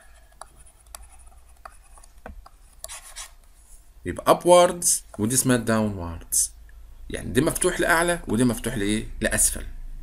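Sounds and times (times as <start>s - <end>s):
stylus scratching and tapping on tablet: 0.0s - 3.7s, 5.0s - 5.3s.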